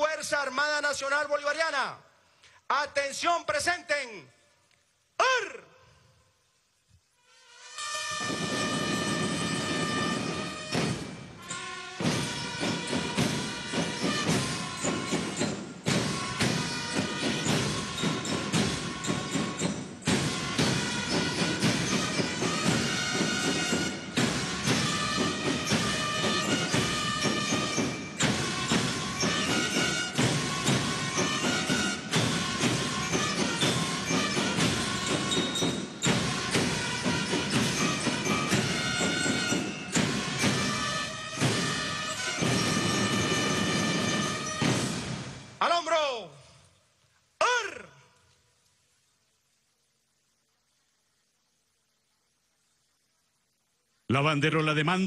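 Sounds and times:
military band music: 7.3s - 45.6s
drum beats: 7.8s - 45.9s.

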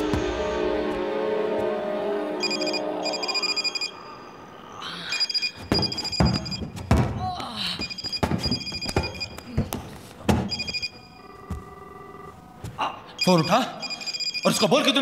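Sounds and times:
phone ringing electronic trill: 2.4s - 4.2s
heavy thuds of blows: 5.7s - 10.6s.

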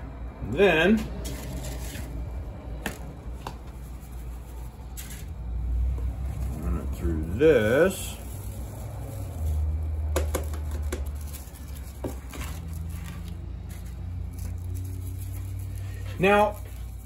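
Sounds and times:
powder rustling through a strainer: 1.0s - 17.0s.

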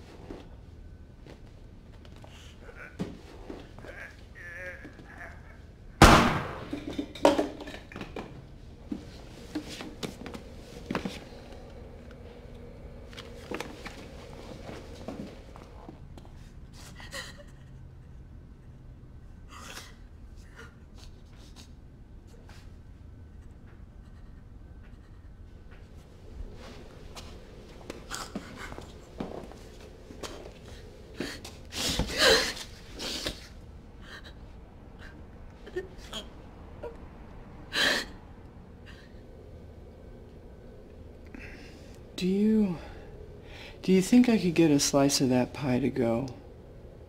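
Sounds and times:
faint quick breaths: 43.4s - 43.8s.

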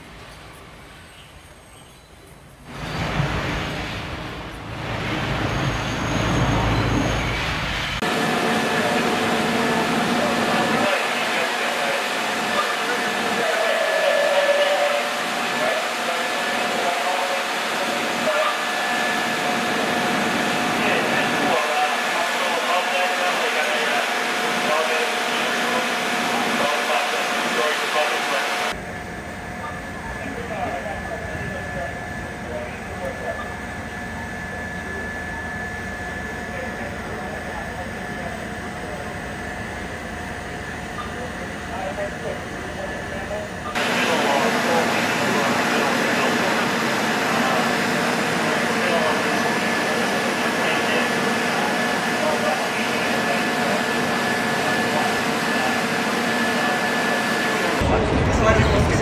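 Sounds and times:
street noise: 0.0s - 59.0s.

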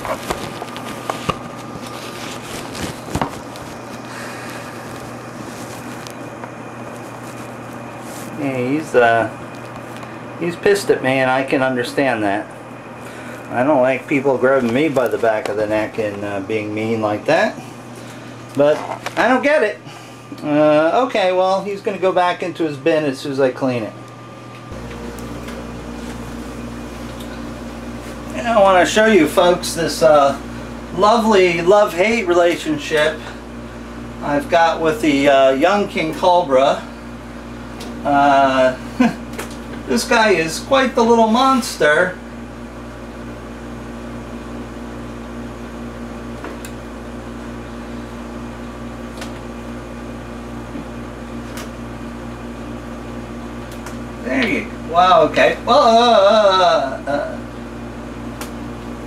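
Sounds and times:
low mechanical hum: 0.0s - 59.0s.

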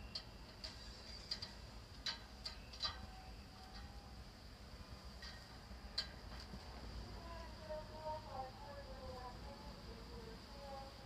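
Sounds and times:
low background hum: 0.0s - 11.0s
faint clicks: 0.1s - 3.9s.

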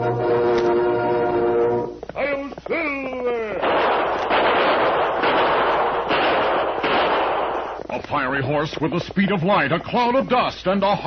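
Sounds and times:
rapid continuous gunfire: 3.6s - 7.8s.

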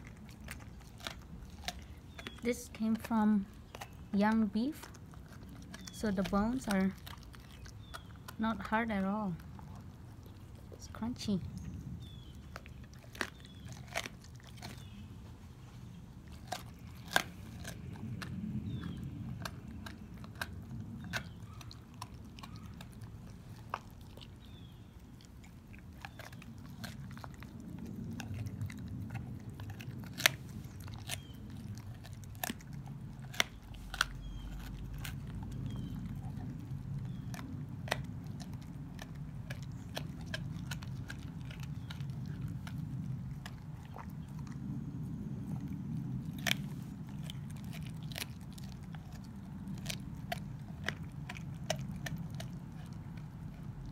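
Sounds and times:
dog gnawing and chewing: 0.0s - 53.9s
rib bones crunching: 0.0s - 53.9s.

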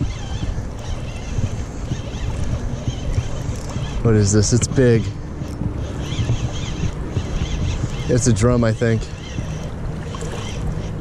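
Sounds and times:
fishing reel cranking: 0.0s - 11.0s
wind on microphone: 0.0s - 11.0s.

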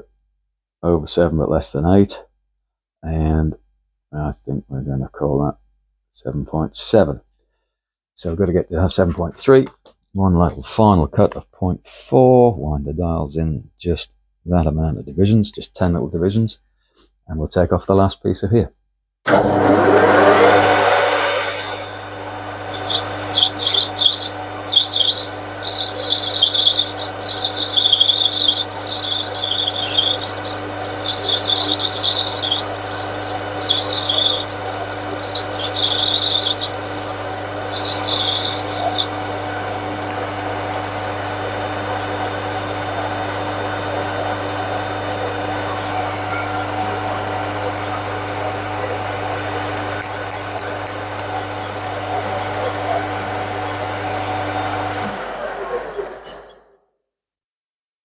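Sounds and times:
scratchy metal cutting noise: 19.3s - 44.4s
lathe motor hum: 19.3s - 56.6s.

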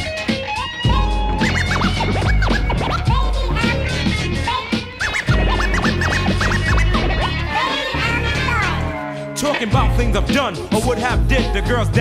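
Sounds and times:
heavy bass beat: 0.0s - 12.0s
turntable scratching: 0.0s - 12.0s.

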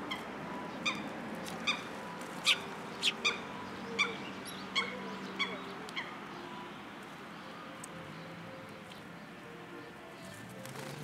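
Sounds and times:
sparrows chirping: 0.0s - 11.0s.

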